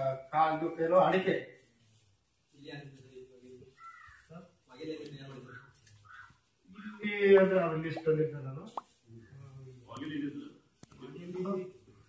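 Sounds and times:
crow cawing: 3.8 - 4.3, 6.0 - 6.4.

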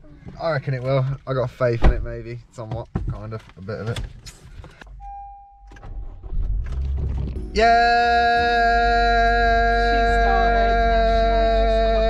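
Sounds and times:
man holding long loud note: 7.5 - 12.0.

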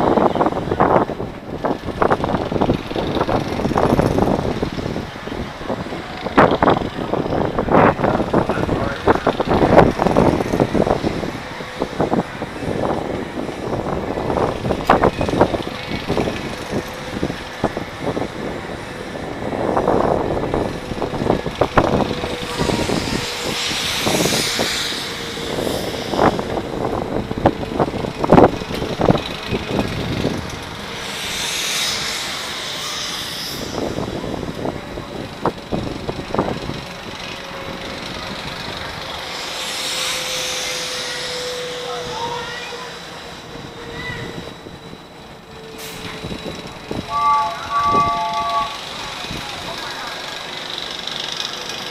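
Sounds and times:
air rushing past: 1.6 - 34.8, 37.9 - 42.2.

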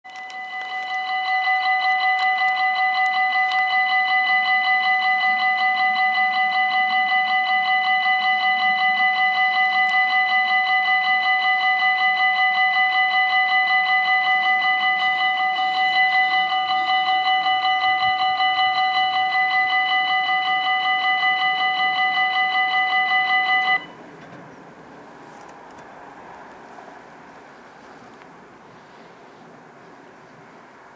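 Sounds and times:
level crossing bell ringing: 0.1 - 24.0.

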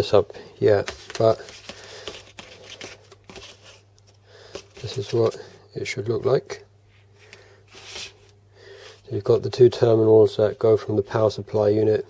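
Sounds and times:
wire rustling on desk: 7.2 - 8.4.

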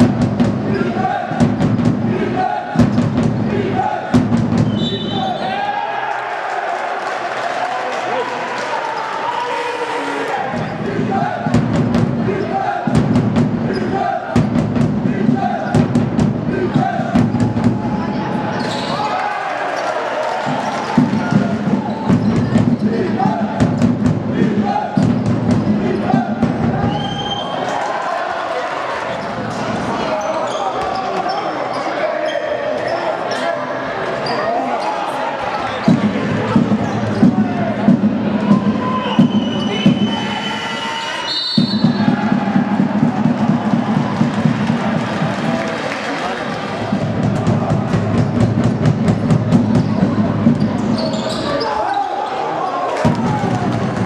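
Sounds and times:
rhythmic crowd noise: 0.0 - 54.0
sports hall noise: 0.0 - 54.0
referee's whistle blast: 4.6 - 5.6, 26.8 - 27.6, 38.8 - 42.1
shoes squeaking on court: 18.5 - 19.1, 50.6 - 52.1
basketball bouncing on court: 20.4 - 24.0.

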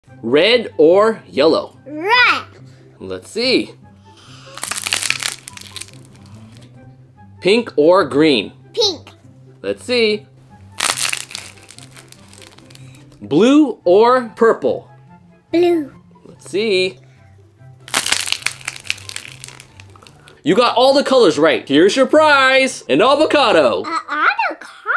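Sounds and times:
dry clay crust cracking: 4.4 - 6.7, 10.7 - 13.2, 17.8 - 20.4.

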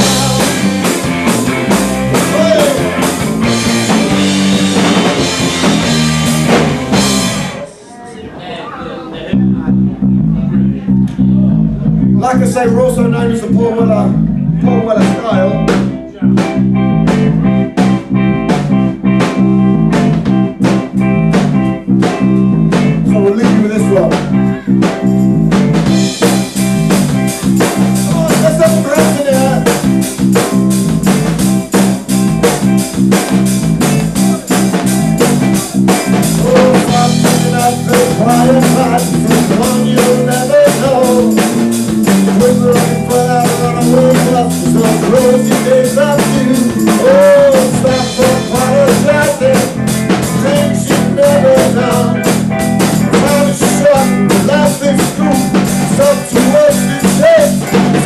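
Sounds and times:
drum beat: 0.0 - 7.6, 13.3 - 58.0
bass guitar: 0.0 - 7.8, 9.1 - 58.0
electric guitars: 0.0 - 7.9, 9.2 - 58.0
live rock band: 0.0 - 7.9, 9.3 - 58.0
lead vocals: 0.0 - 17.9, 22.0 - 25.0, 25.8 - 31.3, 32.9 - 58.0.

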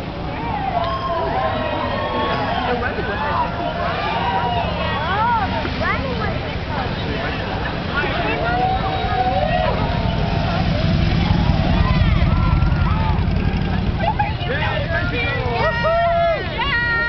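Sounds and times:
motorcycle engines rumbling: 0.0 - 17.0
spectators calling out: 0.0 - 17.0.

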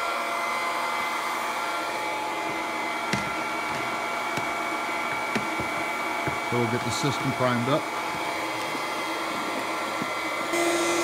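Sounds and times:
electric pumps whirring: 0.0 - 11.0.

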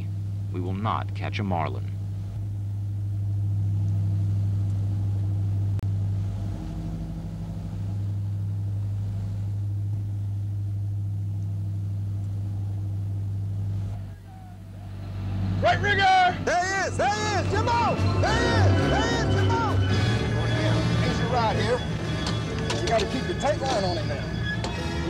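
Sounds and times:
boat engines droning: 0.0 - 25.0.

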